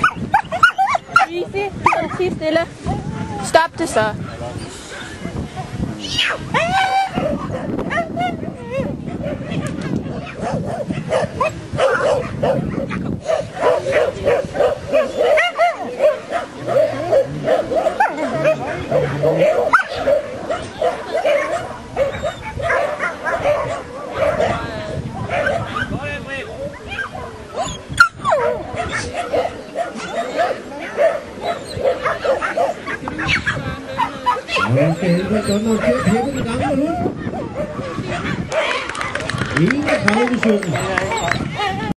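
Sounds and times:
people's voices: 0:00.0 - 0:41.9
dog barking rapidly: 0:06.2 - 0:24.6, 0:25.2 - 0:26.0, 0:26.9 - 0:33.6, 0:34.3 - 0:39.1.

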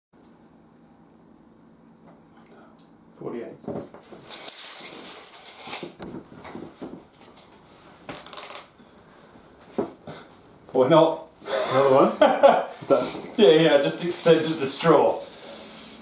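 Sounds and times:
low room hum: 0:00.2 - 0:16.0.

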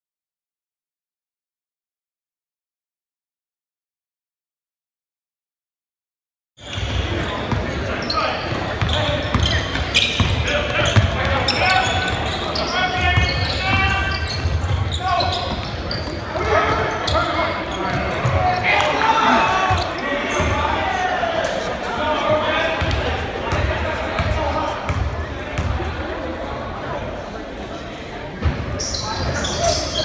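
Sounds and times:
indistinct shouts and chatter: 0:06.6 - 0:30.0.

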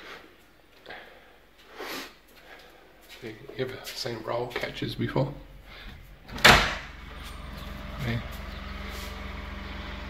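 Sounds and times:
steady low hum: 0:04.6 - 0:10.0.

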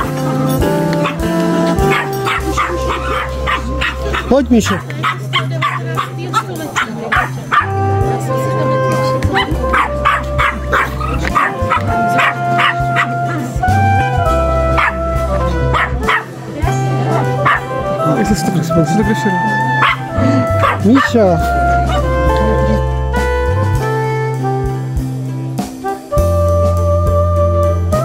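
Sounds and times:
background music with pulsing bass: 0:00.0 - 0:28.0
small dog barking and yipping: 0:01.0 - 0:01.2, 0:01.9 - 0:07.7, 0:09.3 - 0:13.4, 0:14.8 - 0:15.0, 0:15.7 - 0:16.4, 0:17.2 - 0:17.7, 0:19.8 - 0:20.0, 0:20.6 - 0:20.8.

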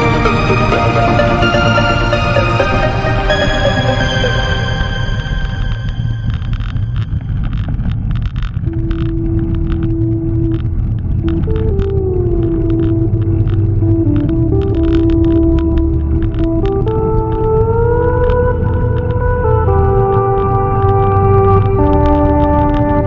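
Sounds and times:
heavy low bass: 0:00.0 - 0:23.0
sustained synth tones: 0:00.0 - 0:23.0.

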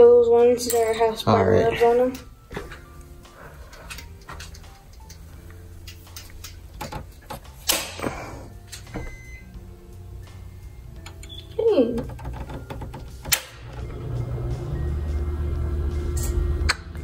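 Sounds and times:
faint music: 0:00.0 - 0:17.0
circuit breakers clicking: 0:03.7 - 0:09.4, 0:10.9 - 0:14.2.

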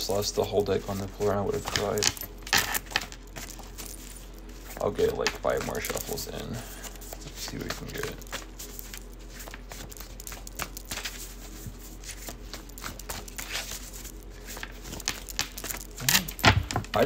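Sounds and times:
cards being shuffled: 0:00.2 - 0:17.0.

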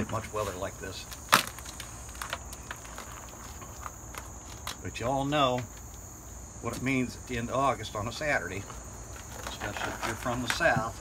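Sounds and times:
dried gourd skin crackling: 0:00.0 - 0:06.0, 0:08.5 - 0:11.0
crickets chirring: 0:00.0 - 0:11.0
sharp crack: 0:01.0 - 0:02.9.

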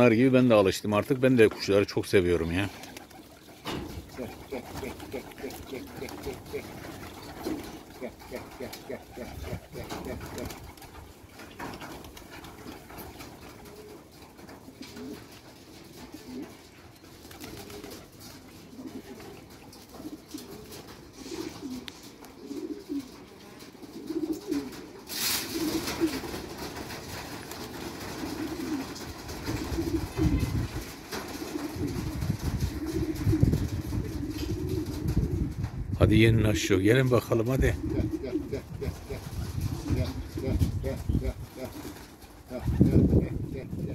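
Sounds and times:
pigeons cooing: 0:02.6 - 0:35.7, 0:37.4 - 0:43.9.

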